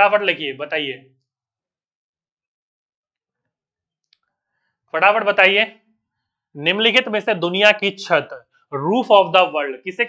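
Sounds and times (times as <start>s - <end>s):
man speaking: 0.0s - 1.1s, 5.0s - 5.8s, 6.6s - 10.0s.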